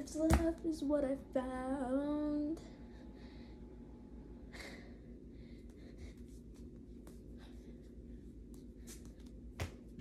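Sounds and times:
low steady hum: 0.0 - 10.0
rustling and scuffing of dancing: 6.0 - 10.0.

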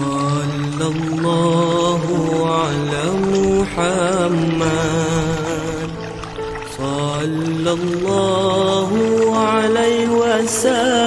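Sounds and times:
devotional chant singing: 0.0 - 11.0.

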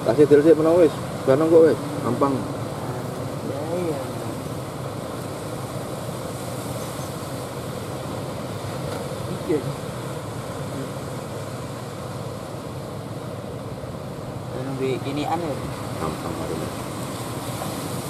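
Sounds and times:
surf roaring: 0.0 - 18.0.

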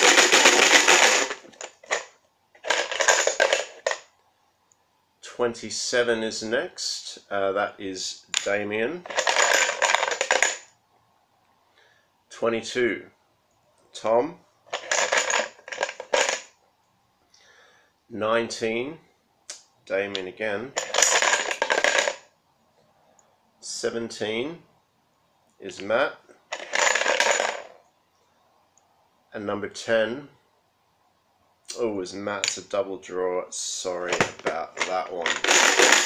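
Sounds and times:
plastic discs clattering in box: 0.0 - 4.0, 34.1 - 36.0
plastic tokens rattling in a box: 0.0 - 4.1, 9.0 - 10.7, 14.7 - 16.5, 20.8 - 22.3, 26.5 - 27.8, 34.0 - 36.0.

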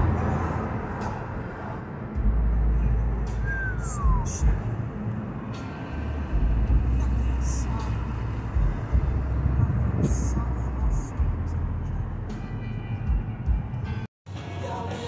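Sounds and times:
road and tyre noise: 0.0 - 15.0.

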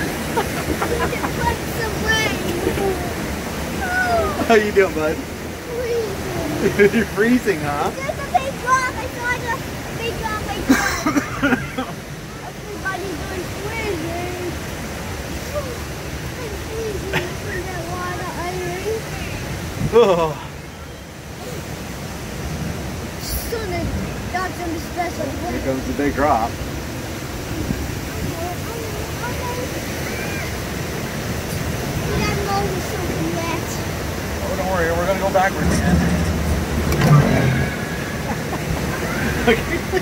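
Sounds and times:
faint voices: 0.0 - 21.9
water rushing: 0.0 - 40.0
child talking: 0.8 - 4.5, 5.6 - 6.8, 7.8 - 11.2, 12.3 - 14.6, 15.3 - 19.5, 23.2 - 25.8, 28.0 - 30.6, 31.6 - 34.0.

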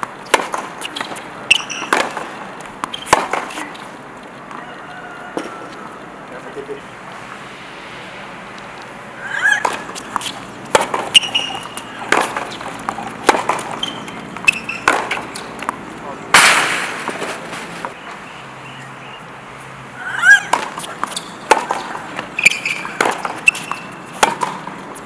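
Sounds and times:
racket striking tennis ball: 0.0 - 6.0, 9.2 - 18.0, 20.1 - 25.0
ball bouncing: 0.0 - 6.1, 9.3 - 18.0, 20.2 - 25.0
shoes squeaking on court: 0.0 - 7.6, 8.4 - 16.2, 16.8 - 25.0.

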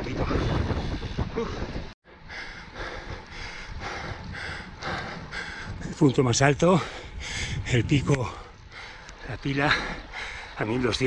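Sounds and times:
low rumble of road and wind: 0.0 - 11.0
heavy rhythmic breathing: 0.6 - 10.6.

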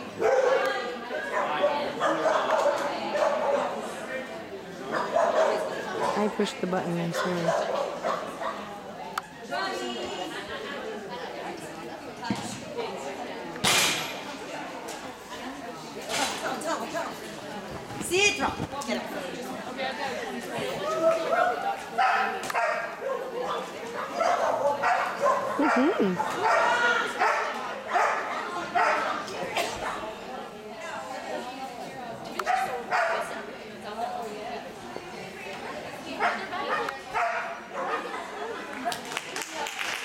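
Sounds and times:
voices echoing in hall: 0.0 - 40.0
dog barking: 0.2 - 0.7, 1.3 - 3.8, 4.9 - 6.3, 7.1 - 8.6, 22.0 - 29.1, 32.4 - 33.3, 36.2 - 38.3.

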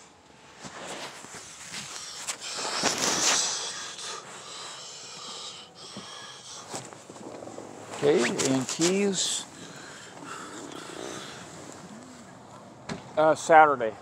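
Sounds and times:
phone handling rubbing and scraping: 6.7 - 9.6.

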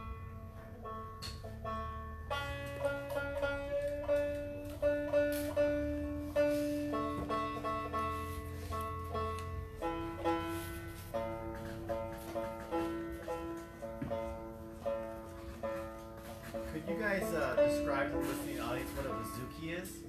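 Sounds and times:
acoustic guitar: 0.0 - 20.0
banjo-like plucked strings: 0.0 - 20.0.

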